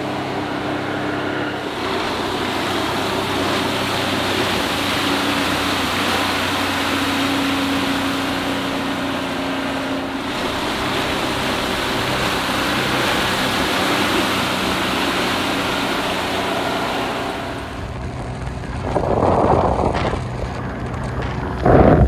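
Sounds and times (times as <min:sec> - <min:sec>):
outboard motor running: 0:00.0 - 0:22.0
water rushing: 0:00.0 - 0:22.0.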